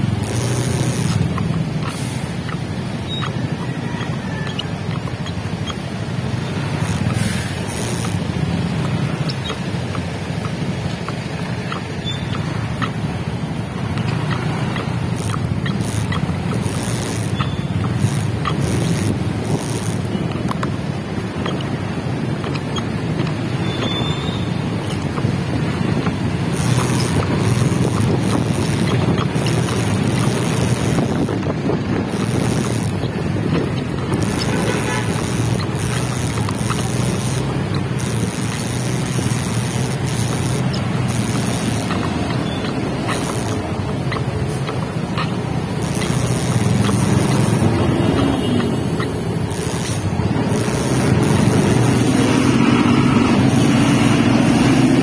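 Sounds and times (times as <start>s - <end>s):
motorcycle engine running: 0.0s - 55.0s
road traffic: 0.0s - 55.0s
wind noise on microphone: 12.4s - 55.0s.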